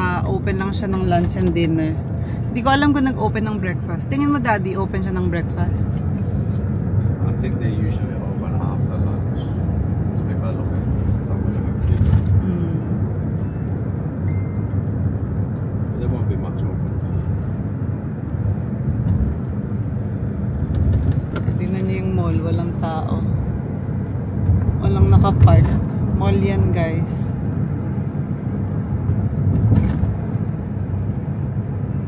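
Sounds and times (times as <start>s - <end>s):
road and engine rumble: 0.0s - 32.0s.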